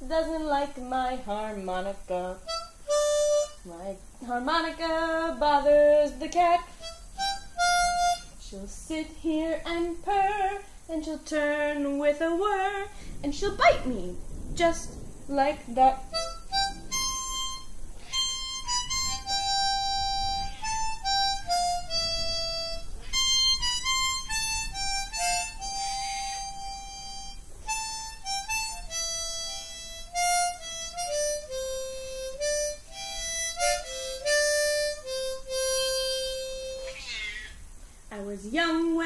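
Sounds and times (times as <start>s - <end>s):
harmonica playing slow melody: 2.4s - 3.9s, 6.3s - 8.4s, 16.1s - 37.6s.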